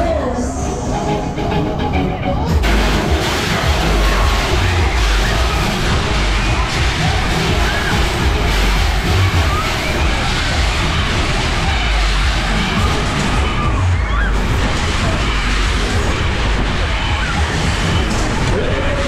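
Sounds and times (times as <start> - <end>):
fairground music: 0.0 - 19.0.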